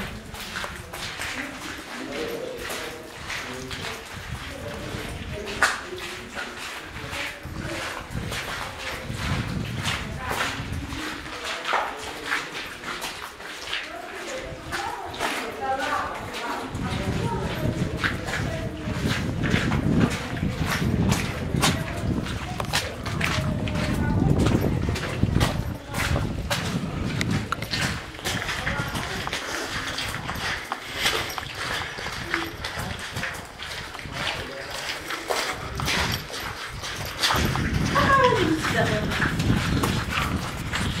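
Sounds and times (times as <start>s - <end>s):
footsteps: 0.0s - 41.0s
indistinct voices: 0.0s - 41.0s.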